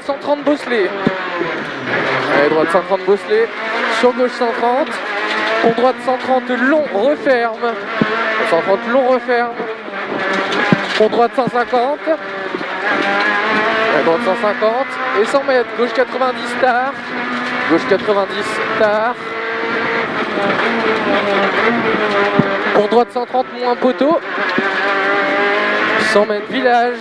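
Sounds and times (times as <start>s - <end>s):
car engine revving hard: 0.0s - 27.0s
road noise: 0.0s - 27.0s.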